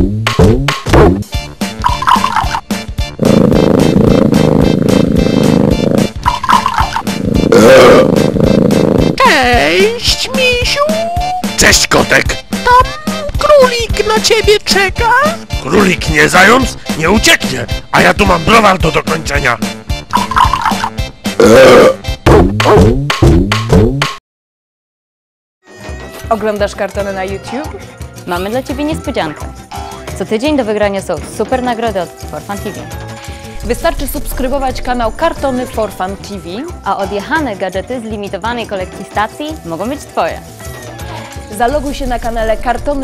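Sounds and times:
cartoon theme music: 0.0 - 24.1, 25.6 - 43.0
loud rough burp: 3.1 - 9.2, 20.2 - 24.0.

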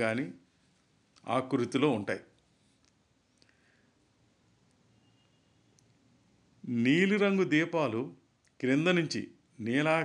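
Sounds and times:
man speaking: 0.0 - 0.4, 1.2 - 2.3, 6.6 - 10.0
faint click: 2.4 - 3.6.

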